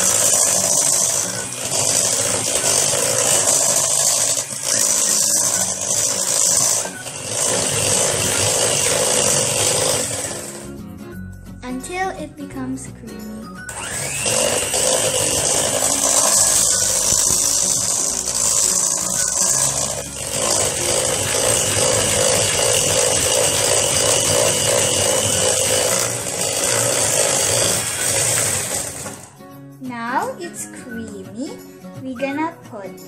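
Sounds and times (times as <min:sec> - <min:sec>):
electric hand mixer whirring: 0:00.0 - 0:10.8, 0:13.6 - 0:29.4.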